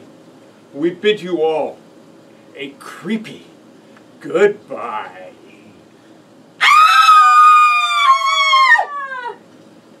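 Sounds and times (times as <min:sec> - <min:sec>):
long high howl: 0:06.6 - 0:09.4.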